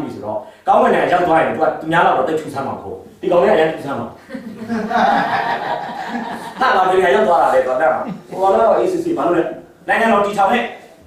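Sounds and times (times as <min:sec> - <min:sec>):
person speaking: 0:00.0 - 0:11.0
person chuckling: 0:08.0 - 0:08.6.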